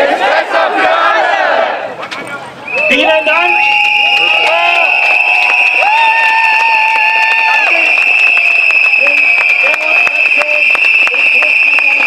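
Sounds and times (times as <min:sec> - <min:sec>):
whistles blowing: 0:02.6 - 0:12.0
crowd clapping and cheering: 0:03.2 - 0:12.0.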